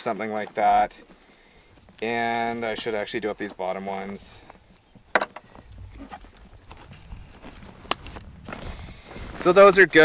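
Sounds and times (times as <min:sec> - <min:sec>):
faint rustling of straps: 0:00.0 - 0:10.0.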